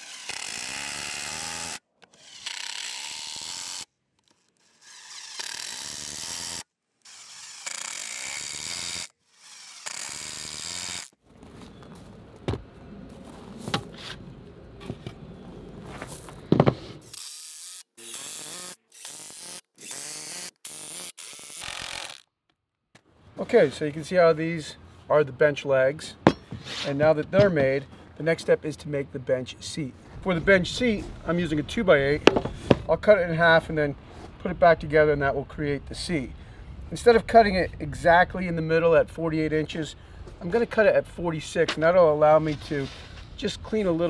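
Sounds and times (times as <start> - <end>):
sharp knocks: 26.2 - 26.6, 32.2 - 32.9
impact driver rattling: 32.2 - 32.9.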